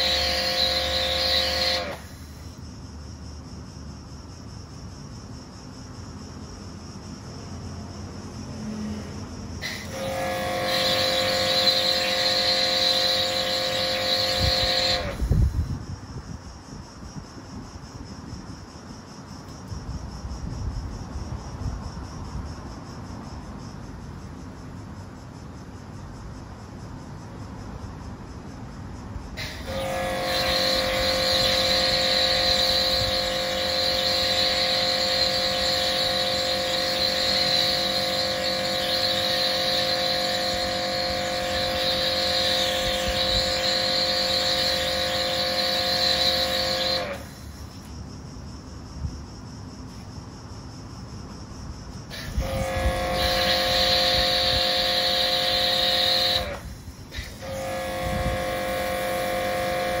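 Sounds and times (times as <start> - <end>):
pressure washer whine: 0.0 - 2.6, 9.6 - 15.7, 29.4 - 47.8, 52.1 - 60.0.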